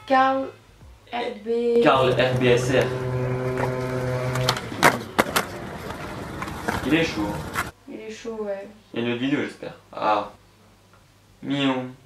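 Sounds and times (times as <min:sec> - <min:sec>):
steady hum: 0:01.7 - 0:07.7
skateboard rolling rumble: 0:01.8 - 0:07.7
skateboard popping and landing clacks: 0:03.5 - 0:07.7.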